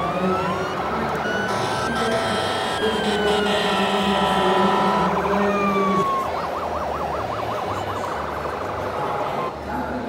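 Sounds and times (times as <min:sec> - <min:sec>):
electronic siren wailing and warbling: 0:00.0 - 0:09.5.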